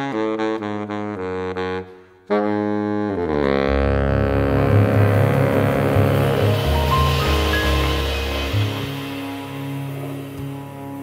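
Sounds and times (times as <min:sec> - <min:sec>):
bass notes: 0:02.6 - 0:11.0
cymbals hissing: 0:05.0 - 0:11.0.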